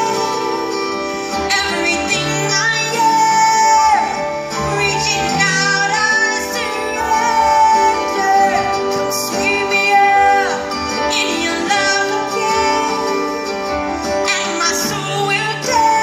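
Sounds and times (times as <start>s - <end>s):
acoustic guitars strumming: 0.0s - 16.0s
woman singing into a microphone: 0.0s - 16.0s.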